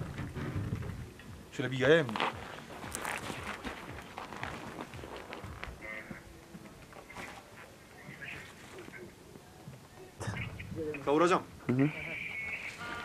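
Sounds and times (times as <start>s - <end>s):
footsteps crunching on snow: 2.0s - 9.0s.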